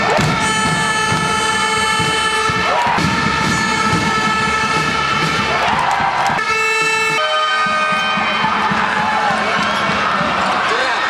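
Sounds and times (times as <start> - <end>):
sustained horn notes: 0.0 - 10.2
crowd noise: 0.0 - 11.0.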